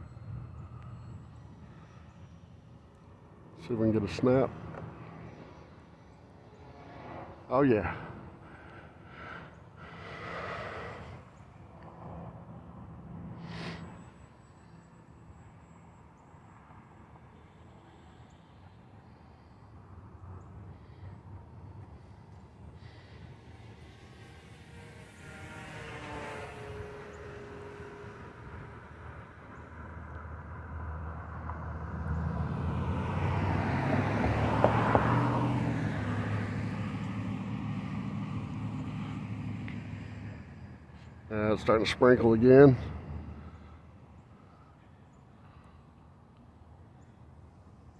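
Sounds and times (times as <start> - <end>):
passing vehicle rumble: 0.0 - 15.9, 19.8 - 47.4
rc plane propeller buzzing: 22.9 - 29.2.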